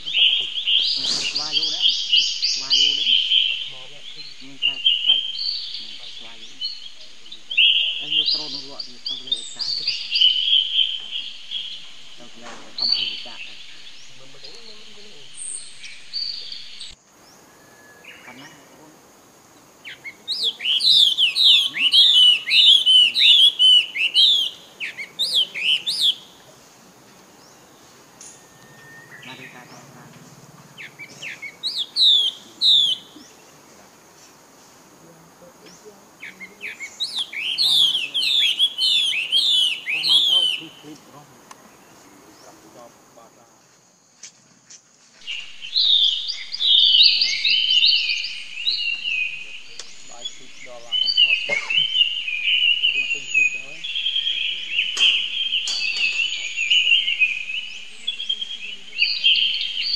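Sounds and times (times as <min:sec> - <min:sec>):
songbirds chirping: 0:00.0 - 0:59.9
bird whistling down-slurred notes: 0:15.5 - 0:18.6, 0:20.0 - 0:26.3, 0:28.1 - 0:29.8, 0:30.8 - 0:33.4, 0:36.6 - 0:40.9.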